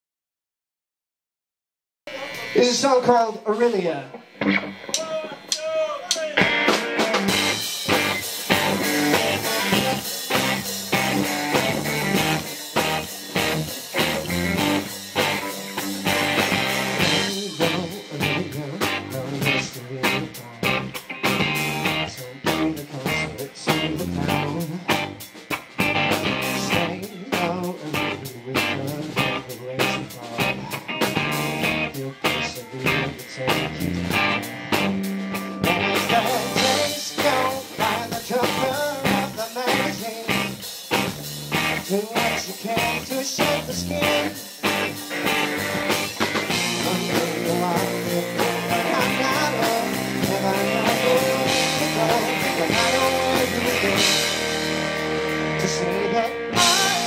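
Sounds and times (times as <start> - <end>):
rock band playing: 2.1 - 57.0.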